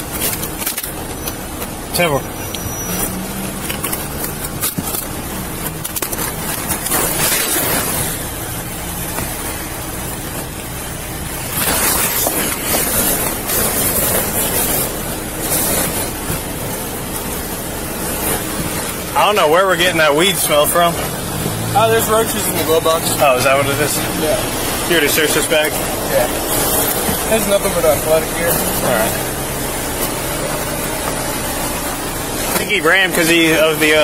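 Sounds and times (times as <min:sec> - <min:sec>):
background traffic: 0:00.0 - 0:34.0.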